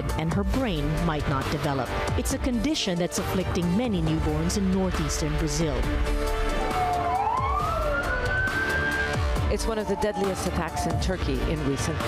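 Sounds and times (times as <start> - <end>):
background music: 0.0 - 12.0
emergency vehicle siren wailing: 6.4 - 12.0.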